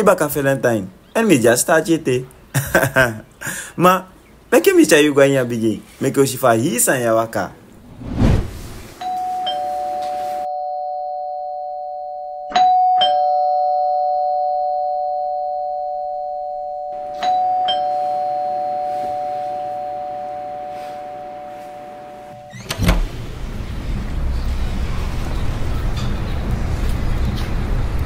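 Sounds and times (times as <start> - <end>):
two-tone doorbell chime: 9.0 - 22.6.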